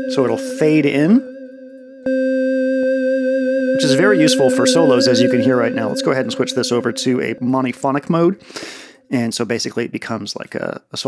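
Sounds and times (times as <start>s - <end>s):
synthesizer note with tremolo: 0.0s - 8.6s.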